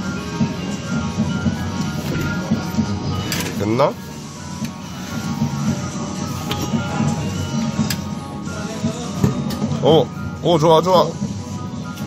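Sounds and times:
steady music: 0.3 - 12.0.

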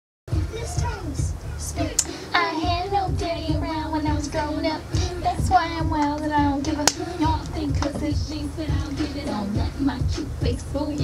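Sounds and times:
girl singing wavering notes: 0.3 - 11.0
recorded music with low beat: 0.3 - 11.0.

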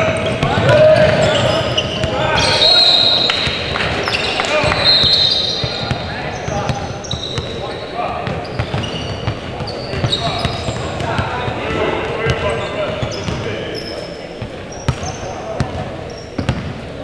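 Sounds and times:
players calling out: 0.0 - 16.4.

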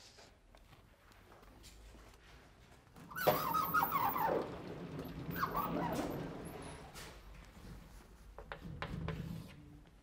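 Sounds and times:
squealing runners: 3.0 - 6.9
sliding panels rolling rumble: 3.1 - 7.3.

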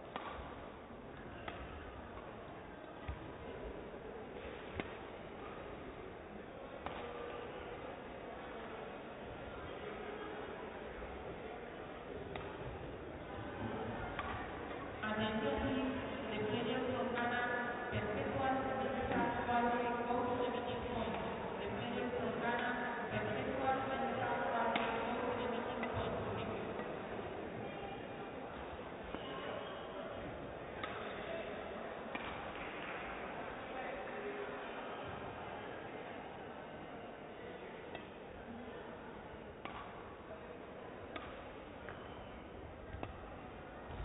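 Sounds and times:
murmur of echoing voices: 0.0 - 44.0
sports hall background hum: 0.0 - 44.0
racket striking shuttlecock: 0.1 - 0.5, 1.4 - 1.8, 12.3 - 12.6, 14.1 - 14.5, 24.7 - 25.0, 30.8 - 31.1, 32.1 - 32.9, 39.6 - 40.0, 41.1 - 42.1, 42.9 - 43.2.

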